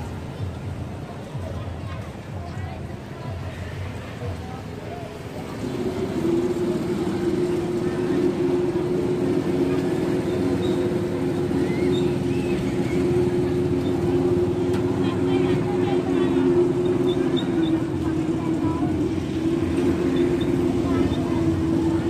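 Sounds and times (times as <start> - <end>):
motor engine humming: 5.3 - 22.0.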